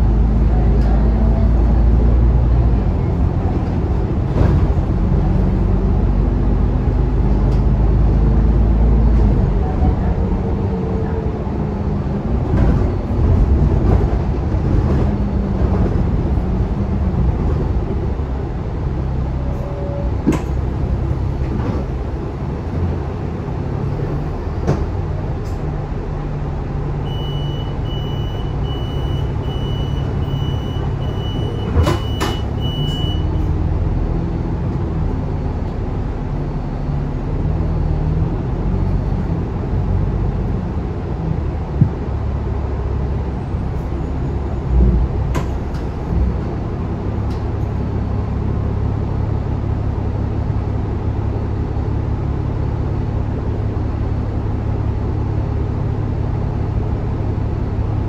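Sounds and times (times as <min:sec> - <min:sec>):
bus engine and road drone: 0:00.0 - 0:58.0.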